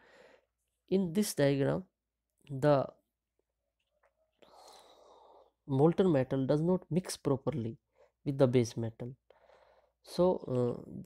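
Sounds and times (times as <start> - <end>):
person breathing: 0.0 - 0.6, 4.4 - 5.6, 9.3 - 10.0.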